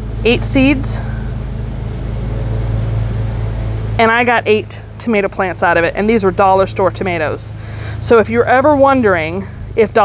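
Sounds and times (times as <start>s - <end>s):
lawn mower engine droning: 0.0s - 10.0s.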